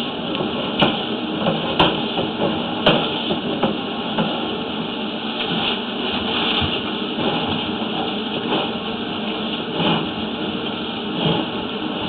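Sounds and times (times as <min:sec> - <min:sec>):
cable scraping in a drain pipe: 0:05.3 - 0:12.0.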